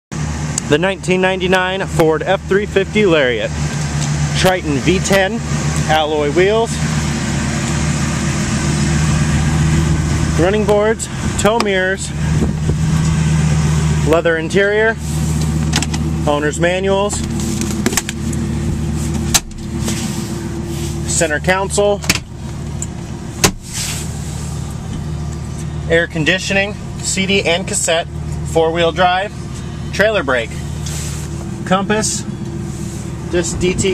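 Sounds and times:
engine idling: 0.1s - 33.9s.

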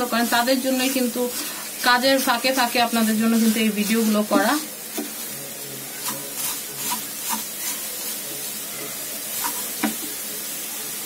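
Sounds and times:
mixture cooking hiss: 0.0s - 11.0s
wooden spatula scraping pan: 0.2s - 10.0s.

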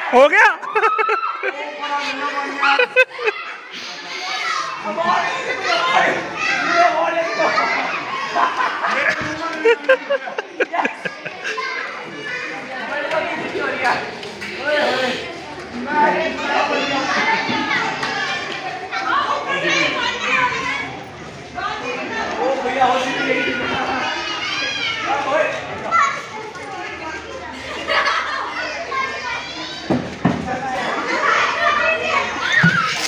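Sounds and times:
children calling and chattering: 0.0s - 33.0s.

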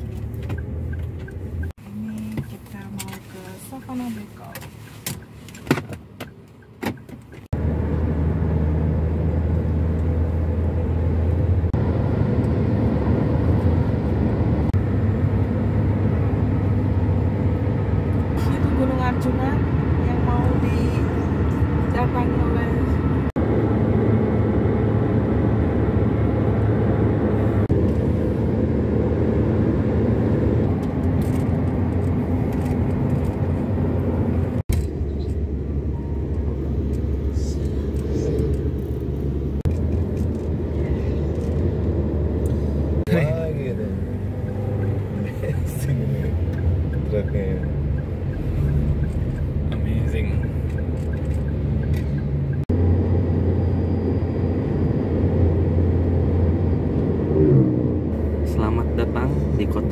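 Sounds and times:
car engine and tyres rumbling: 0.0s - 59.9s.

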